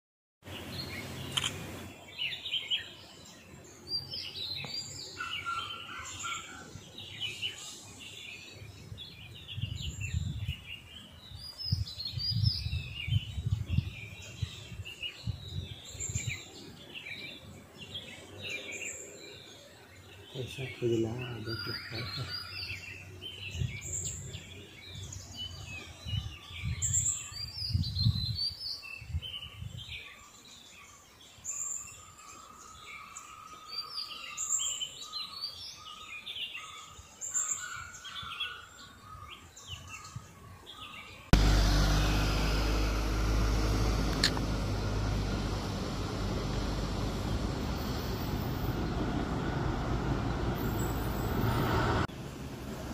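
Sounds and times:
birds chirping and calling: 0:00.5 - 0:52.1
rushing noise with deep rumble: 0:41.4 - 0:52.9.

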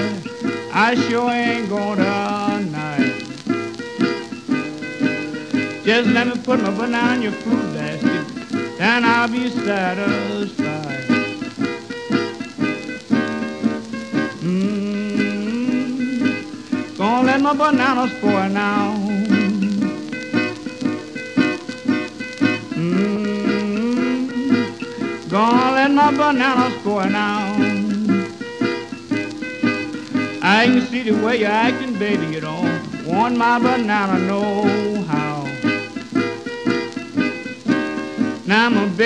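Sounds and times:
person singing: 0:00.0 - 0:03.4, 0:05.7 - 0:11.4, 0:14.0 - 0:20.1, 0:22.3 - 0:28.4, 0:30.2 - 0:35.8, 0:38.4 - 0:39.0
acoustic guitar playing blues: 0:00.0 - 0:39.0.

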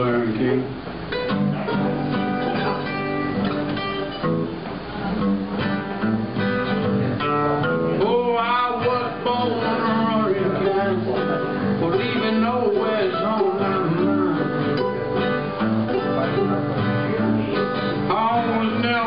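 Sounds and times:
acoustic guitar strummed: 0:00.0 - 0:19.0
mandolin picked: 0:01.1 - 0:19.0.

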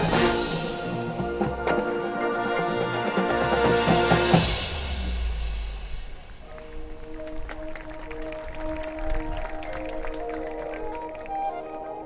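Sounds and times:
marching band playing held chords: 0:00.0 - 0:12.0.

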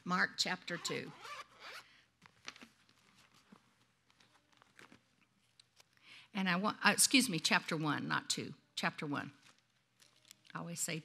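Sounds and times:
pages rustling: 0:02.2 - 0:06.0, 0:09.4 - 0:10.6.

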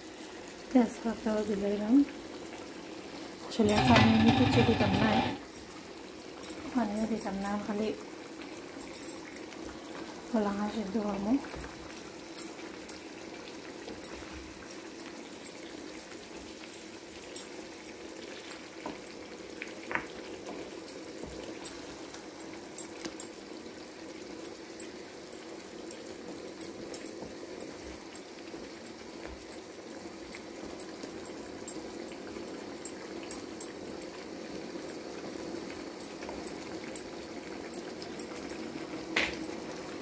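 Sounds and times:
stew simmering in a pan: 0:00.0 - 0:40.0.

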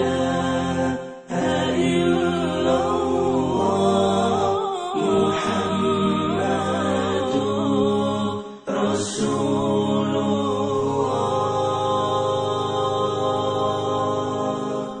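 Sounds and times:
chanted vocal music: 0:00.0 - 0:15.0.

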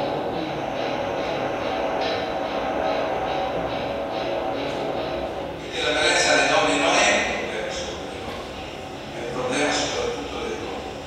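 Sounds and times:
voice over loudspeakers: 0:05.6 - 0:08.5, 0:09.1 - 0:10.9.

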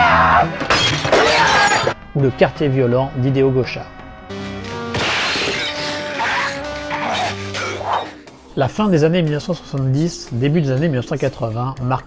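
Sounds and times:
film music: 0:00.0 - 0:11.9
crashing and shattering: 0:00.6 - 0:02.0, 0:04.5 - 0:07.8.

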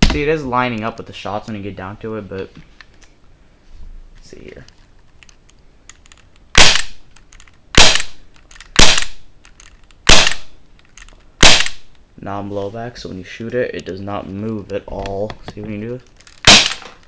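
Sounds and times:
airsoft pistol shots: 0:06.6 - 0:07.0, 0:07.8 - 0:08.2, 0:08.8 - 0:09.2, 0:10.1 - 0:10.5, 0:11.4 - 0:11.9, 0:16.4 - 0:16.9.

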